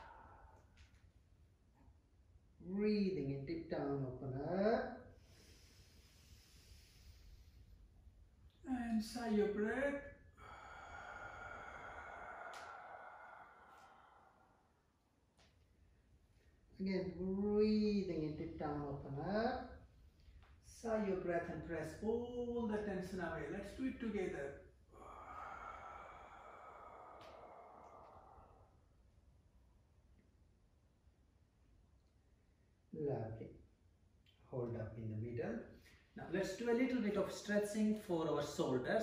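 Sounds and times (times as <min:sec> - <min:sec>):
breathy sigh through the mouth: 0:10.4 - 0:14.8, 0:24.9 - 0:28.9.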